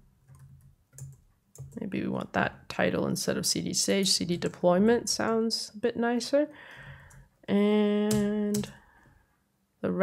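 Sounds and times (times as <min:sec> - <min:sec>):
woman speaking: 0:01.8 - 0:06.6, 0:07.4 - 0:08.8.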